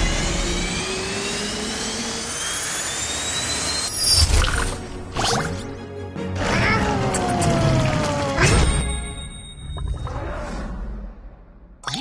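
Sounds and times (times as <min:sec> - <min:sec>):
cartoon jet engine whine: 0:00.0 - 0:05.7, 0:06.4 - 0:09.2.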